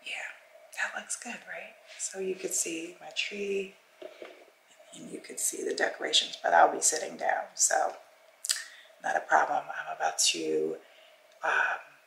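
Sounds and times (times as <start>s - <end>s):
woman talking softly: 0.0s - 3.7s.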